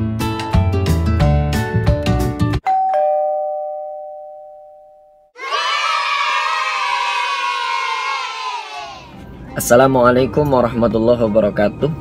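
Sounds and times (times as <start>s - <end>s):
background music: 0.0s - 2.6s
two-note ding-dong chime: 2.6s - 5.3s
crowd cheering and shouting: 5.4s - 9.2s.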